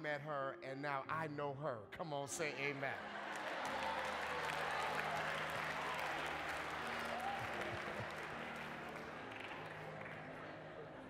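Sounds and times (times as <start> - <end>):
congregation applauding: 2.6 - 11.0
crowd voices: 2.6 - 11.0.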